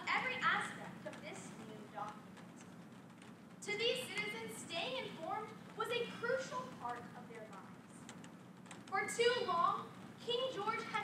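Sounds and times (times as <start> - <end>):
young woman speaking: 0.0 - 2.2, 3.6 - 7.8, 8.9 - 11.0
faint clicks: 1.1 - 3.5, 6.8 - 9.0.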